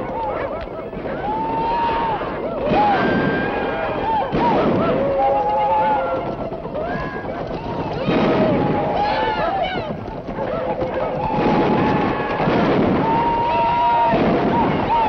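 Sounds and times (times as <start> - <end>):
men shouting and whooping: 0.0 - 15.0
gunshots: 0.9 - 15.0.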